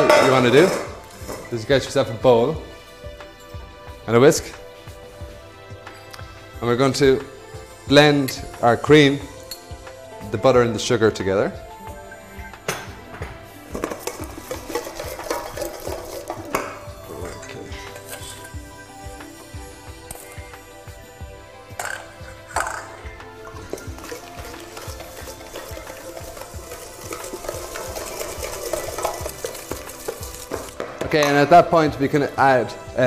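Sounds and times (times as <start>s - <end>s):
background music: 0.0s - 33.0s
whisk scraping metal bowl: 13.7s - 18.6s, 23.4s - 30.8s.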